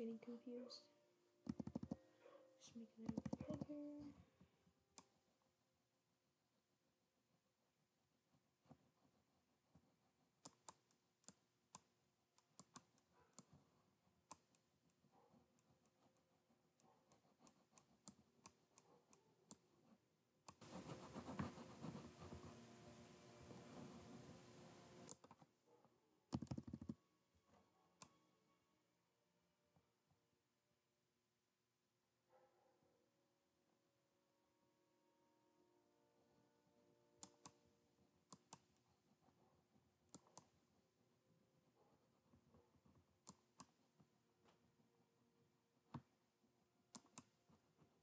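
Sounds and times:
computer mouse clicks: 1.4 - 2.0, 3.0 - 3.8, 10.4 - 13.6, 14.2 - 15.0, 25.0 - 25.4, 26.3 - 27.0, 38.3 - 38.8, 40.1 - 40.6, 43.2 - 43.8, 46.9 - 47.4.

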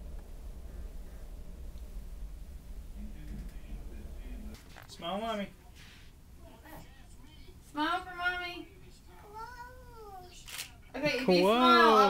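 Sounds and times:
child whining: 9.2 - 10.4.

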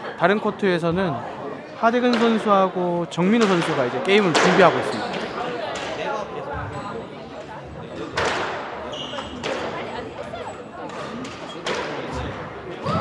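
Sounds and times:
ball hitting court walls: 2.1 - 2.5, 3.3 - 6.1, 8.0 - 9.9
squash racket striking ball: 2.1 - 2.5, 3.3 - 6.0, 8.1 - 9.9, 10.9 - 12.2.

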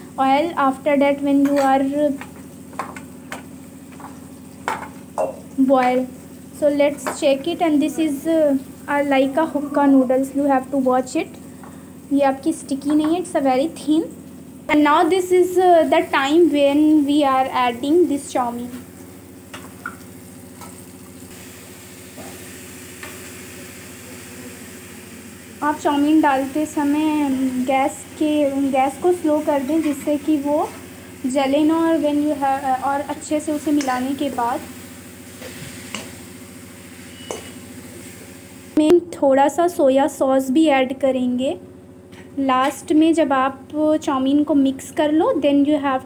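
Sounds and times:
faint frying sizzle: 0.0 - 40.6
utensil knocking on metal pan: 1.4 - 5.4.

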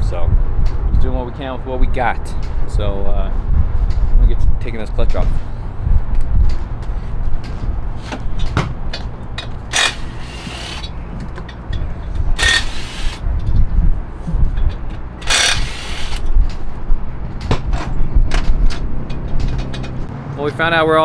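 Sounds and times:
hand tools clicking and clanking: 7.4 - 13.7, 14.5 - 16.7, 17.4 - 20.1.

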